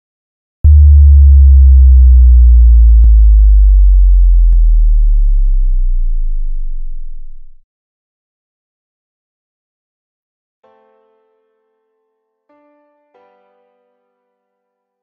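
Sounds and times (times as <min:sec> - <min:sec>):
deep sub-bass hit: 0:00.6 - 0:07.6.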